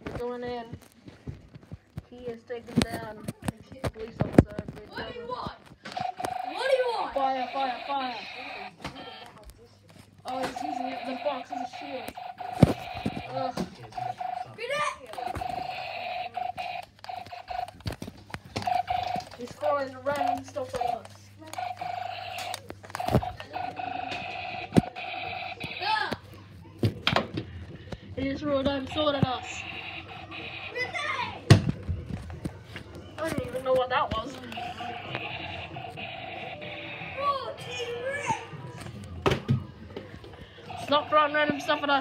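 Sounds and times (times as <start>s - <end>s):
toy blaster handling: 15.0s - 26.2s.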